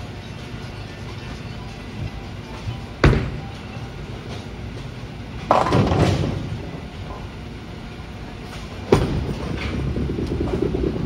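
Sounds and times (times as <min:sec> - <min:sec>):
bowling ball rolling rumble: 0:08.8 - 0:11.0.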